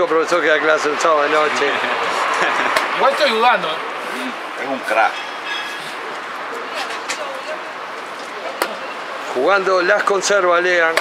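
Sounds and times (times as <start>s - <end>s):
murmur of background voices: 0.0s - 11.0s.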